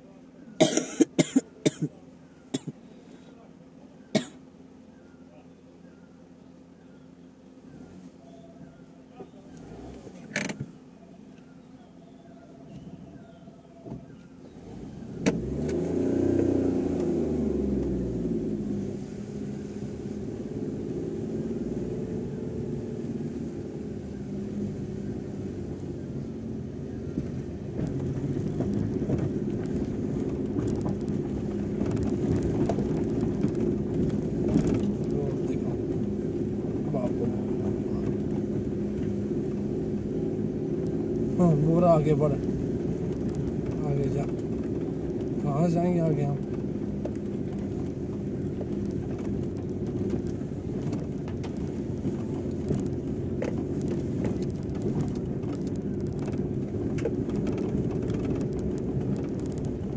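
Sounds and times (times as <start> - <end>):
car engine running: 0.0 - 59.9
tyres and body rattling on gravel: 8.1 - 59.9.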